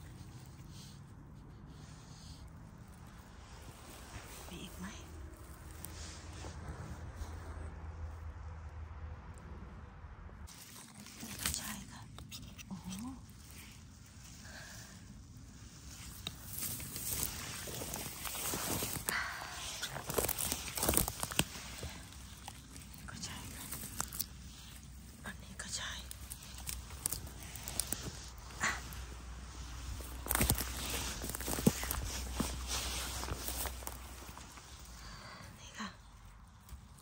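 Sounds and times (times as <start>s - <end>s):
dry stems crackling and snapping: 3.8s - 6.4s, 10.5s - 37.0s
footsteps crunching through undergrowth: 13.3s - 35.2s.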